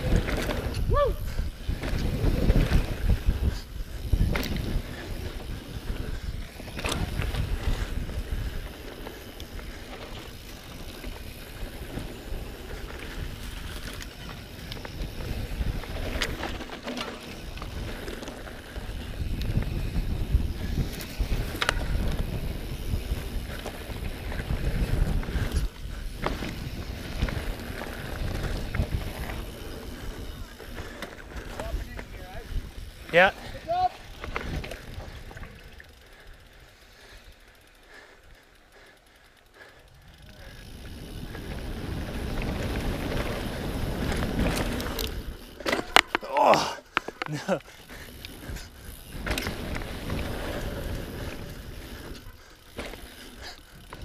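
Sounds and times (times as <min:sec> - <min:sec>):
wind buffeting microphone: 0:00.0 - 0:16.6, 0:17.4 - 0:36.4, 0:40.1 - 0:45.6
bike rattling over bumps: 0:00.0 - 0:54.0
bike tyres rolling on dirt: 0:00.0 - 0:54.0.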